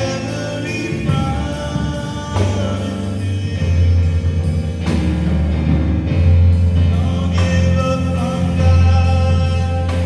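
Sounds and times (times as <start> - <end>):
person singing: 0.0 - 5.1, 6.5 - 10.0
drum kit with cymbals: 0.0 - 10.0
keyboard bass notes: 0.0 - 10.0.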